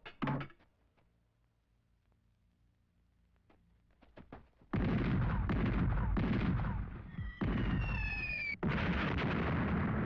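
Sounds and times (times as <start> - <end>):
field guns firing: 4.7 - 10.0.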